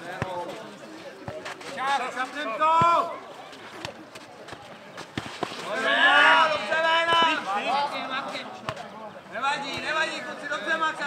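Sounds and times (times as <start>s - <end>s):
ball kicked and bouncing: 0.1s - 0.5s, 1.2s - 1.7s, 2.7s - 3.1s, 3.8s - 5.7s, 8.6s - 8.9s, 9.7s - 10.0s.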